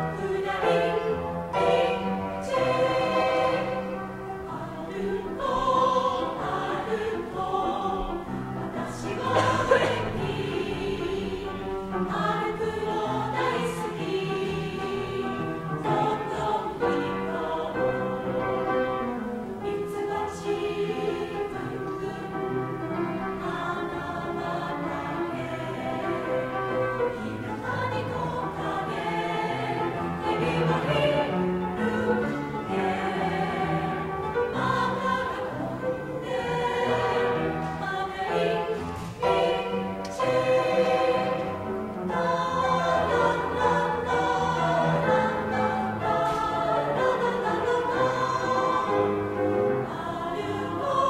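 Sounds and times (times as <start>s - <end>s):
mixed choir singing: 0.0s - 51.0s.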